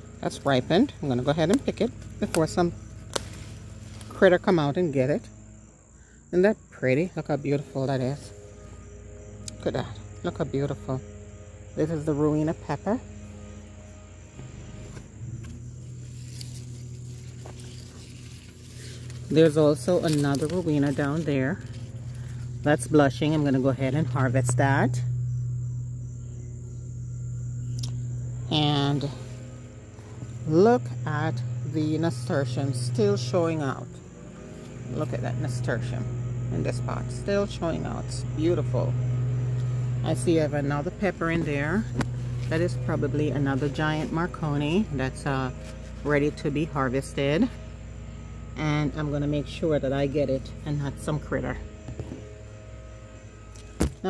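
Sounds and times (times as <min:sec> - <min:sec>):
crickets trilling: 0:00.0 - 0:54.0
low steady hum: 0:00.0 - 0:54.0
pepper stem snapping: 0:01.5 - 0:04.1.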